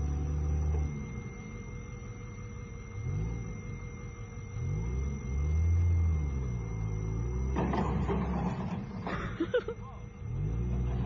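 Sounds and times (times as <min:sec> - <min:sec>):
forklift engine revving: 0:00.0 - 0:11.0.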